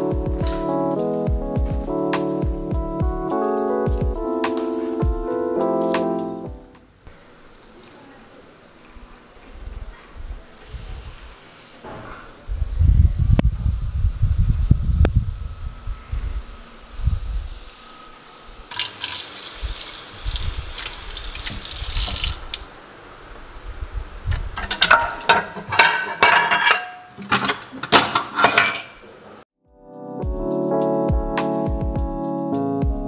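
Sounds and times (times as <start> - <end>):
low rumbling: 12.5 - 18.7
tap water running into sink: 18.7 - 22.7
dishes and cutlery clinking: 24.6 - 29.1.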